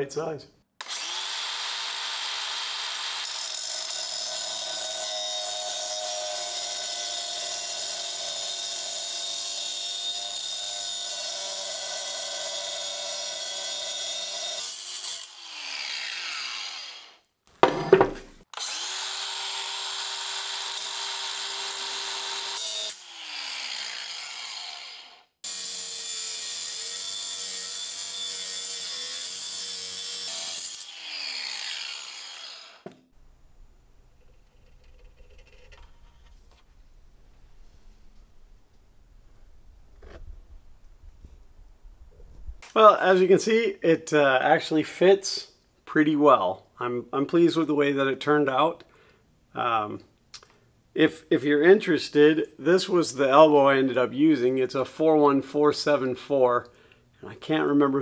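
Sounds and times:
angle grinder cutting metal pipe: 0.8 - 33.1.

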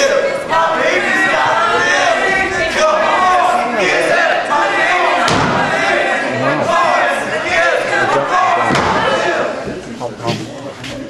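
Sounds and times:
voices speaking over one another: 0.0 - 11.0
thump: 5.3 - 5.7.

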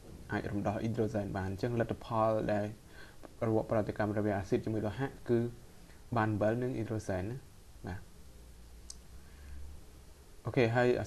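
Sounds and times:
soft click: 8.8 - 9.1.

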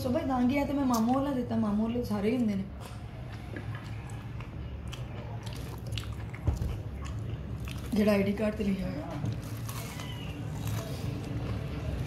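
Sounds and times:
chewing crispy fried chicken: 2.8 - 8.1, 9.1 - 12.0.

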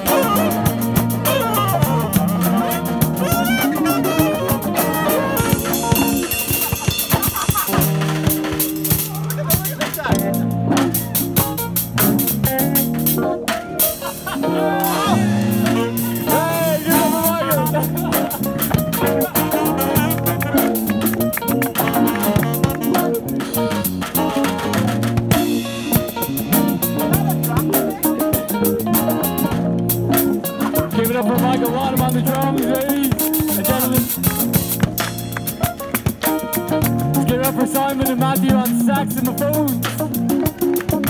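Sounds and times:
drum kit with cymbal strokes: 0.0 - 41.0
electric bass: 0.0 - 41.0
electric guitar bending lead line: 0.0 - 41.0
keyboard: 0.0 - 41.0.

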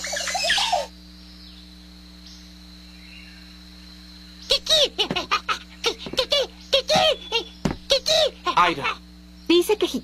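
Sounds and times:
faint steady hum: 0.0 - 10.0
jungle birds chirping: 0.0 - 10.0.

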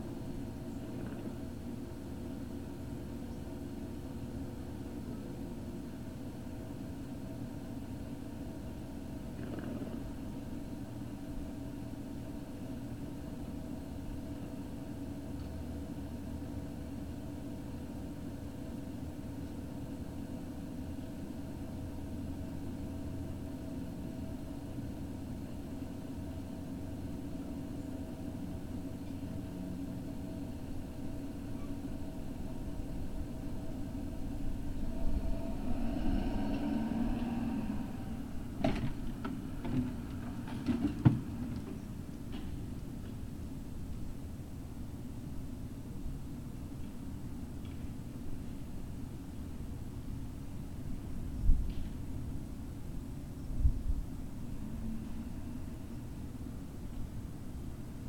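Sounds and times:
low rumble with hum: 0.0 - 58.0.

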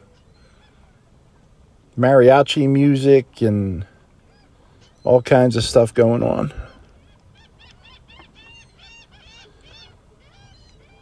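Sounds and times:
birds calling: 0.0 - 11.0.

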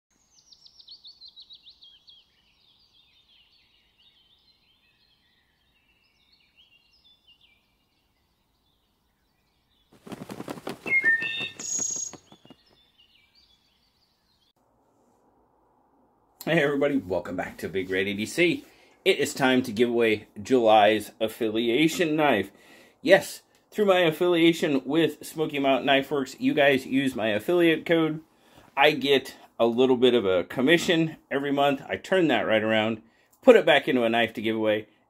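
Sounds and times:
bird chirping song: 0.1 - 14.6.

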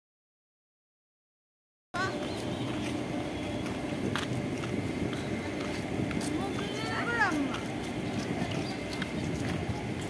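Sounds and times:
street noise hum: 1.9 - 10.0
footsteps on hard pavement: 2.0 - 10.0.

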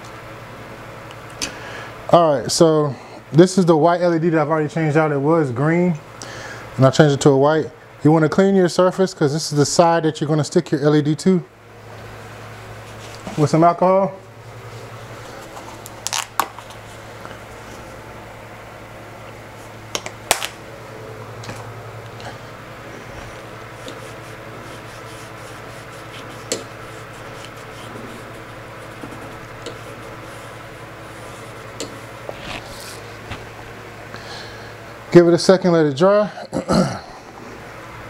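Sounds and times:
steady low hum: 0.0 - 38.0
paper towel rubbing metal surface: 12.8 - 13.6, 23.1 - 33.4.

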